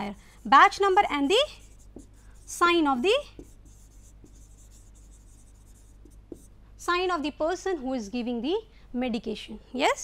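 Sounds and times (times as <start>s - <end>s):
person speaking: 0.0s - 9.9s
pen scratching while writing: 1.6s - 6.5s.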